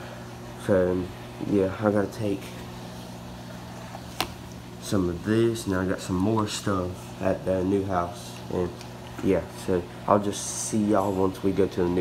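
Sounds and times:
aquarium equipment humming: 0.0 - 12.0.

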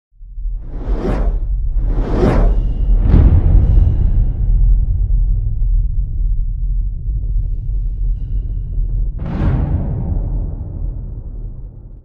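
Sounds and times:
deep low rumble: 0.2 - 12.0
whoosh sound effect: 0.6 - 3.4.

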